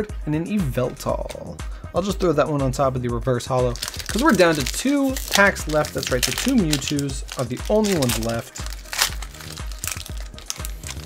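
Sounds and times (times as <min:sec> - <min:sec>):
foil pack crinkling: 0:03.7 - 0:11.0.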